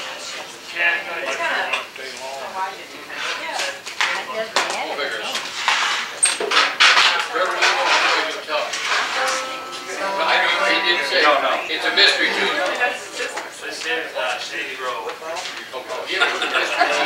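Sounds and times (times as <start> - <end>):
room chatter: 0.0 - 17.0
sustained string notes: 9.2 - 13.7.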